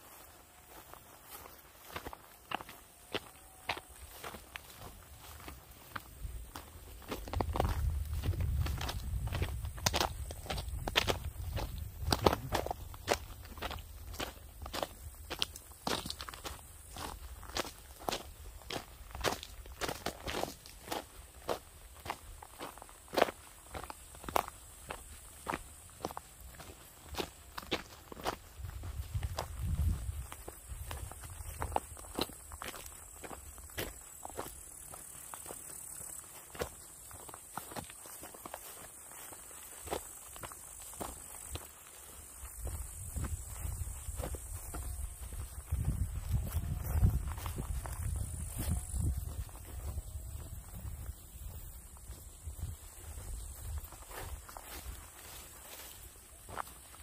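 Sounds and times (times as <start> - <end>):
footsteps on gravel path: 0.0 - 57.0.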